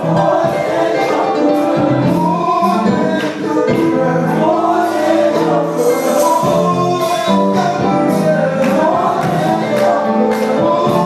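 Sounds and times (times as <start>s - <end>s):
bass guitar: 0.0s - 11.0s
male vocal group singing in harmony: 0.0s - 11.0s
steady drum beat: 0.0s - 11.0s.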